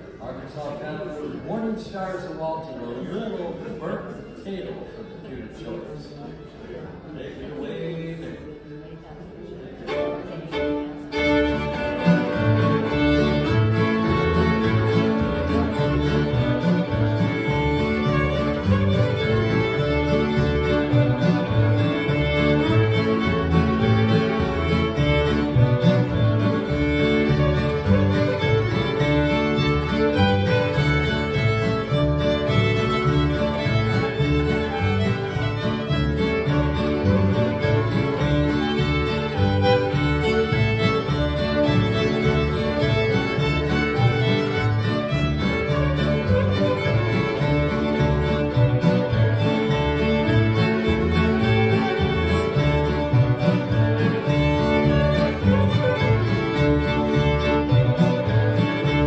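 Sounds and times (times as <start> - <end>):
fiddle playing a tune: 9.8 - 59.0
strummed acoustic guitars: 11.2 - 59.0
upright bass: 11.2 - 59.0.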